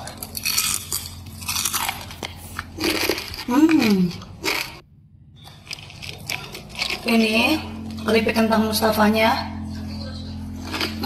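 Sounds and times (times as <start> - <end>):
crunching and chewing potato chips: 0.0 - 4.8, 5.4 - 8.4, 9.8 - 11.0.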